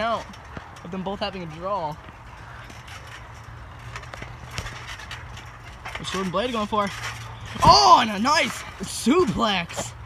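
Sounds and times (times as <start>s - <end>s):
trampoline knocks and creaks: 0.0s - 10.0s.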